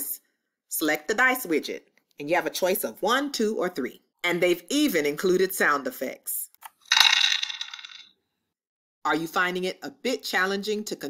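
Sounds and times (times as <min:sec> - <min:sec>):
dice rattling sound effect: 0:06.7 - 0:08.1.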